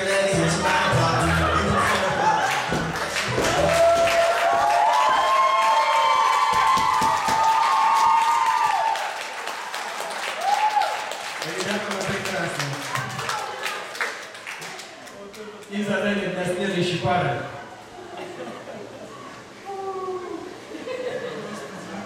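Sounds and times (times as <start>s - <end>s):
dance music: 0.0s - 5.2s
audience clapping and cheering: 0.0s - 15.7s.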